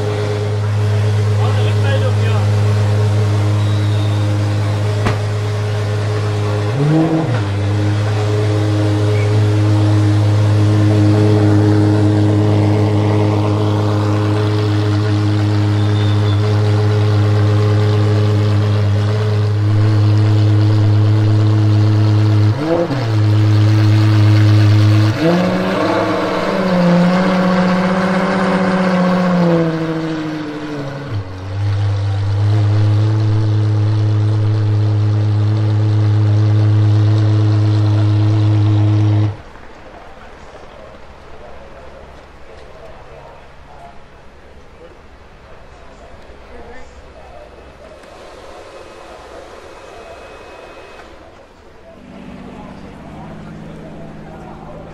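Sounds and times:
car engine idling and revving: 0.0 - 43.6, 44.2 - 54.9.

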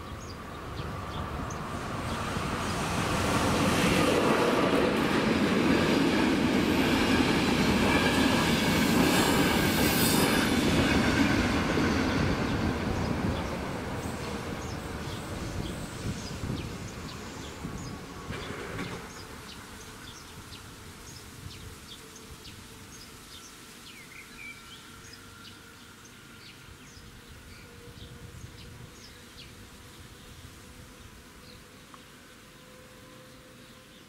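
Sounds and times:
train rumble: 0.1 - 23.2.

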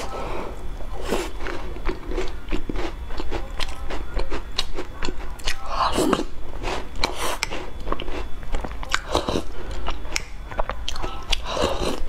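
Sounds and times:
chewing and biting cookie: 0.0 - 12.0.

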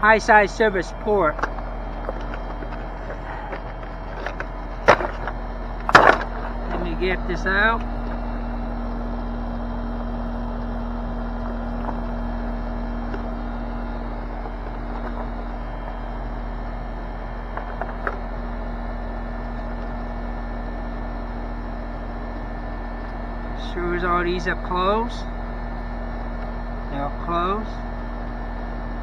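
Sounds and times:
air conditioner unit humming: 0.0 - 29.0.

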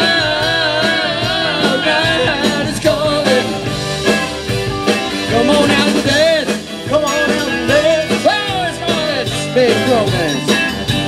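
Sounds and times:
bass guitar: 0.0 - 11.0
drums: 0.0 - 11.0
keyboard: 0.0 - 11.0.

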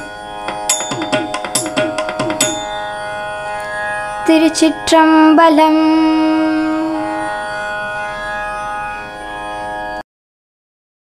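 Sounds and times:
sustained instrumental drone: 0.0 - 10.0.

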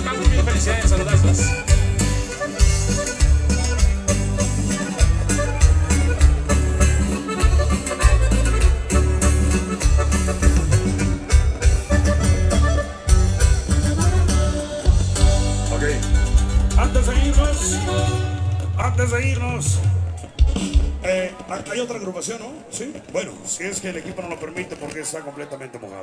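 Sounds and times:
accordion: 0.0 - 19.0
pulsing bass line: 0.0 - 20.2
percussion: 0.0 - 25.0.

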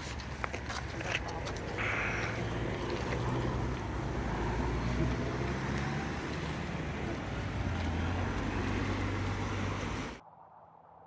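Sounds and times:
vehicle engine humming: 0.0 - 10.2.

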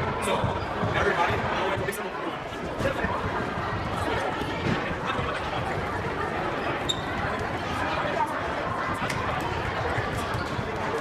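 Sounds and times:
indistinct chatter of people: 0.0 - 11.0
high squeak: 6.8 - 7.1.

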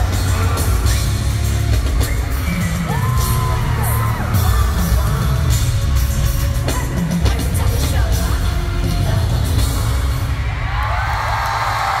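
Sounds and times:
crowd screaming and cheering: 0.0 - 12.0
live pop music with heavy bass: 0.0 - 12.0.

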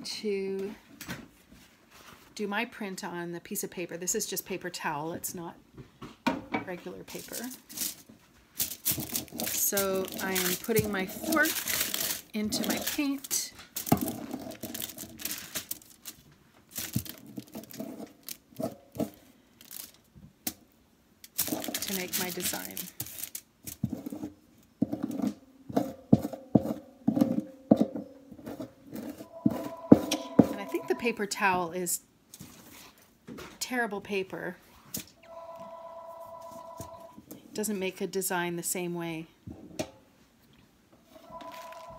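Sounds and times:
aluminium foil crinkling: 7.0 - 20.1, 21.2 - 24.3, 41.4 - 41.9
two-pitch electronic beep: 29.3 - 31.2, 35.3 - 37.1, 41.3 - 41.9.

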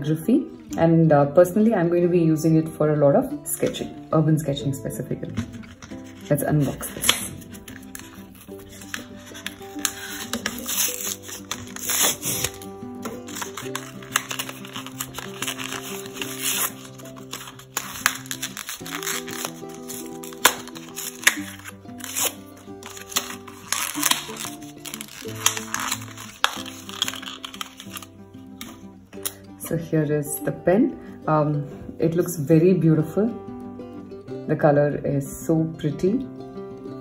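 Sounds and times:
background music held notes: 0.0 - 37.0
card backing tearing: 5.4 - 28.8
plastic packaging crinkling: 5.5 - 28.2.

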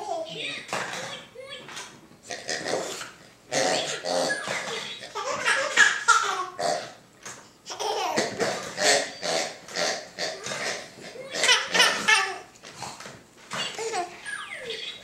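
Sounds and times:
toddler laughing: 4.3 - 6.6, 7.7 - 8.4, 11.1 - 12.5, 13.7 - 15.0.

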